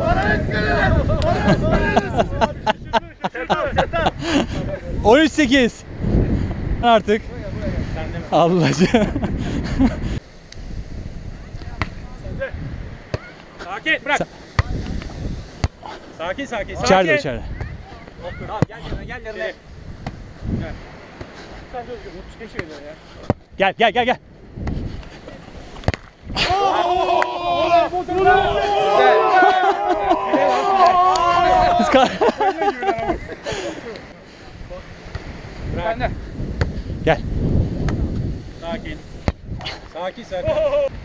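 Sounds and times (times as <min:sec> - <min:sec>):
wind rumbling on microphone: 0:00.0 - 0:13.2, 0:14.2 - 0:22.4, 0:23.1 - 0:41.0
hands slapping volleyball: 0:25.8 - 0:26.1
players calling out: 0:26.3 - 0:34.2.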